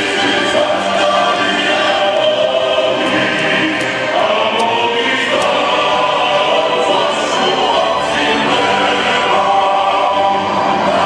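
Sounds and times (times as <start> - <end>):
choir singing an anthem: 0.0 - 11.0.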